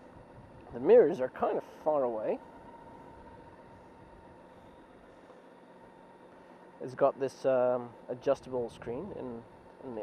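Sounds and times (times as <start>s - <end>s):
faint motorcycle engine idling: 0.0s - 10.0s.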